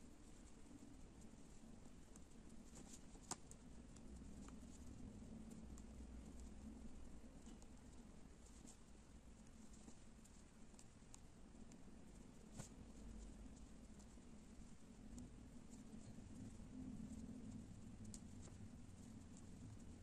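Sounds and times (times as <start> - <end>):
hands handling yarn: 12.4 - 16.1.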